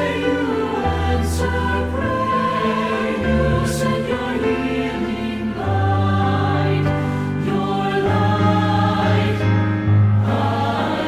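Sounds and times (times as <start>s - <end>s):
mixed choir singing: 0.0s - 11.0s.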